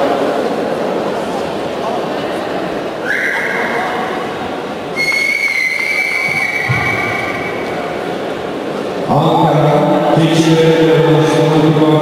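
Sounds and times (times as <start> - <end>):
sports hall noise: 0.0 - 12.0
whistle blasts: 3.0 - 3.7, 4.9 - 7.7.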